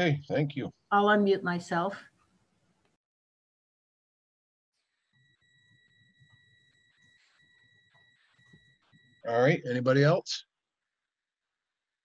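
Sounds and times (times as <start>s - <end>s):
faint high-pitched tone: 5.2s - 10.3s.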